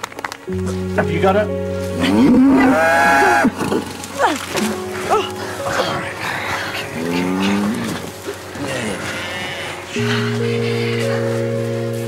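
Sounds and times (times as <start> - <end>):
cow bellowing: 2.0 - 11.4.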